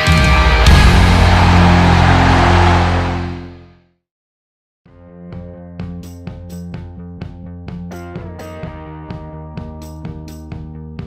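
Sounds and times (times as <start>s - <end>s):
heavy rock closing chord: 0.0s - 3.6s.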